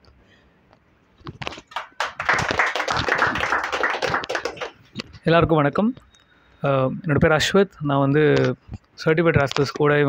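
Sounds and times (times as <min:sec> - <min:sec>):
many hands clapping: 0:01.4 - 0:05.0.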